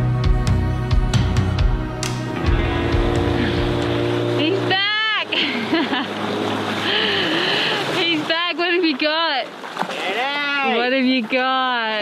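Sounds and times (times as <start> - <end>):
background music: 0.0 - 5.3
water noise: 1.6 - 12.0
small outboard motor running: 2.0 - 12.0
man shouting excitedly: 10.0 - 10.8.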